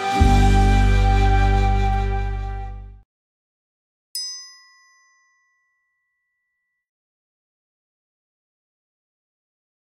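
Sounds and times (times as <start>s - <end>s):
bell-like ding: 4.2s - 6.9s.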